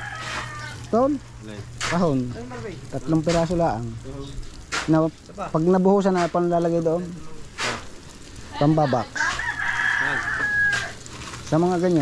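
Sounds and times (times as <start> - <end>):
rooster crowing: 0.0 - 0.9, 9.0 - 11.1
men talking: 0.9 - 7.9, 9.9 - 10.4, 11.5 - 12.0.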